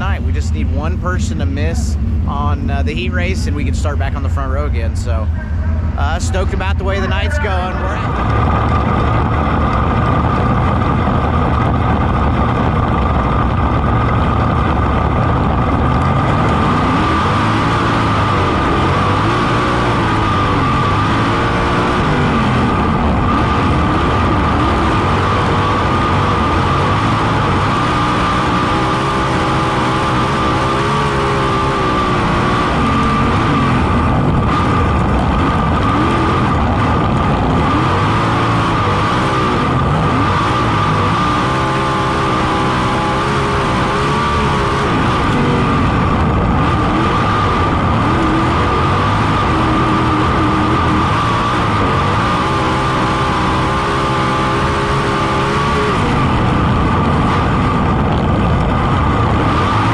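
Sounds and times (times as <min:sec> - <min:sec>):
steady high tone: 0:00.0 - 0:08.4
race car engine revving: 0:00.0 - 0:59.9.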